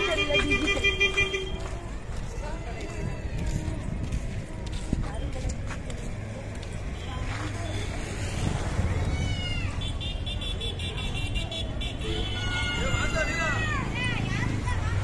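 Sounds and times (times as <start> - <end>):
motor traffic: 0.0 - 15.0
voices of passers-by: 0.0 - 15.0.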